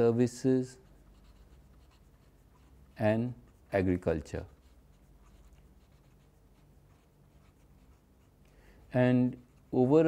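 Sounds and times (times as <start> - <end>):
low room hum: 0.0 - 10.0
felt-tip pen writing on paper: 0.8 - 8.4.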